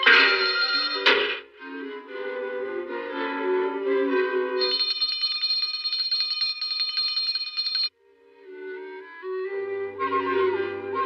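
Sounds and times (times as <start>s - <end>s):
handbell ringing rapidly: 0.0s - 1.0s, 4.6s - 7.9s
orchestral cartoon music: 0.0s - 4.6s, 8.2s - 11.0s.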